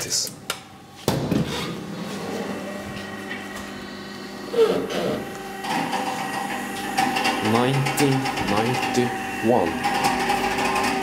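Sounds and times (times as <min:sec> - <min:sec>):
elevator mechanical hum: 0:00.0 - 0:11.0
person speaking: 0:07.4 - 0:09.8.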